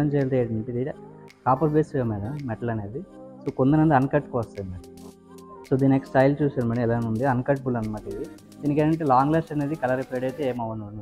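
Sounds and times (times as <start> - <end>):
man talking: 0.0 - 4.9, 5.7 - 11.0.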